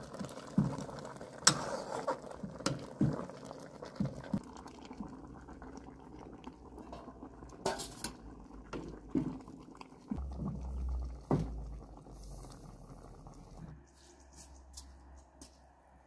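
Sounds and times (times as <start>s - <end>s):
boiling water bubbling: 0.0s - 13.8s
metal ladle scraping cooking pot: 1.4s - 2.8s, 7.0s - 8.2s.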